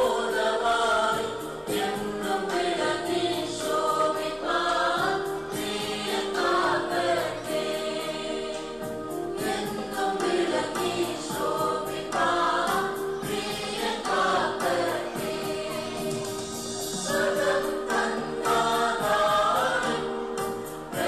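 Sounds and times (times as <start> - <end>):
church choir singing: 0.0 - 21.0.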